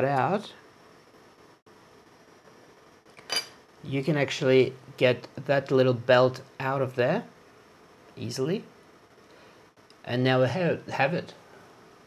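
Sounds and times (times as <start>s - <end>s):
metallic clink: 3.2s - 3.6s.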